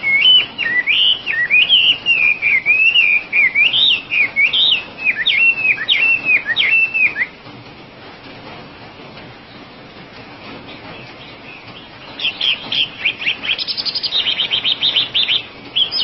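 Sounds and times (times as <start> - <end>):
bird singing whistled phrases: 0.0 - 7.3, 12.1 - 16.0.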